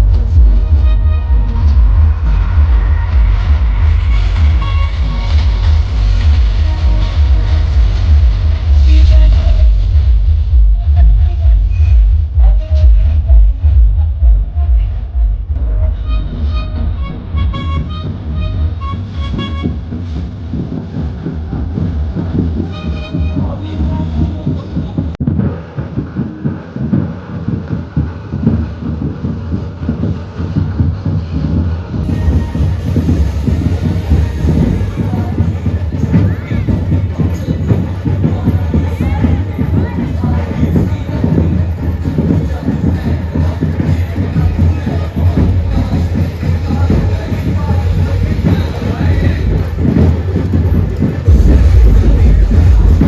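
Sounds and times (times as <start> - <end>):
horn-like stabs: 0.0 - 26.2, 30.4 - 39.0, 43.4 - 53.0
loud music with heavy bass: 0.0 - 53.0.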